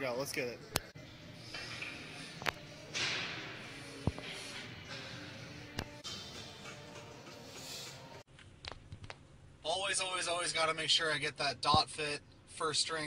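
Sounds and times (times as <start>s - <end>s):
background music: 0.0s - 8.3s
sharp breaths: 1.2s - 5.7s, 7.3s - 8.2s.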